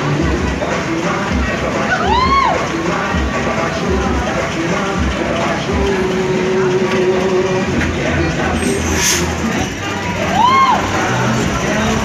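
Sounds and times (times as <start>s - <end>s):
crowd noise: 0.0s - 12.0s
pop music with steady beat: 0.0s - 12.0s
pitched whoop: 1.9s - 2.6s, 10.3s - 11.0s.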